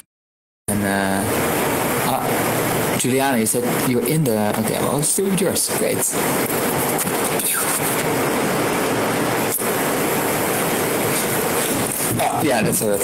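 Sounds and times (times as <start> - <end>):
loud rushing noise: 1.3 - 4.0, 4.7 - 13.0.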